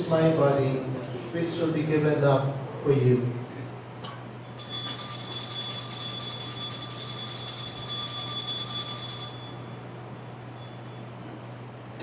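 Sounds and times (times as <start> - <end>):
altar bells ringing: 4.5 - 9.9, 10.5 - 11.1.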